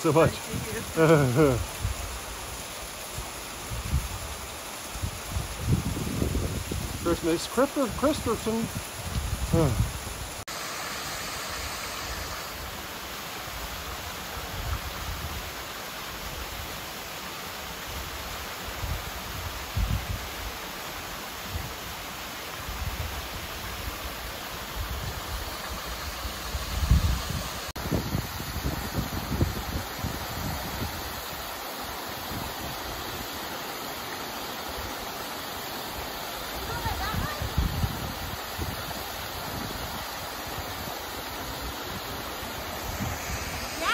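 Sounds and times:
waterfall rushing onto rock: 0.0 - 43.9.

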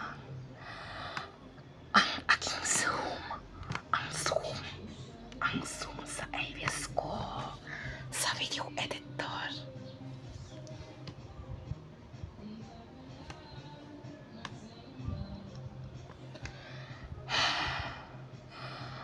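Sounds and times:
person whispering: 2.0 - 9.7.

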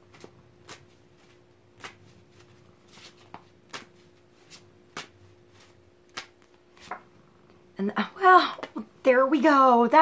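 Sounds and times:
cards being shuffled: 0.0 - 7.1
sharp card taps: 3.0 - 5.2, 6.1 - 7.1
woman speaking: 7.8 - 10.0.

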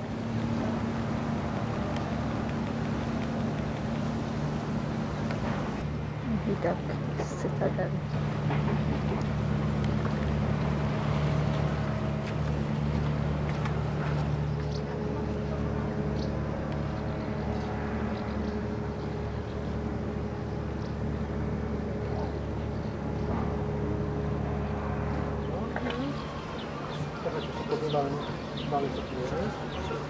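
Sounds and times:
low mechanical hum: 0.0 - 30.0.

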